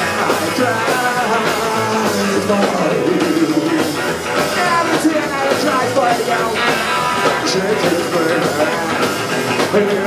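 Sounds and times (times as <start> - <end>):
drums: 0.0 - 10.0
electric guitar: 0.0 - 10.0
upright double bass: 0.0 - 10.0.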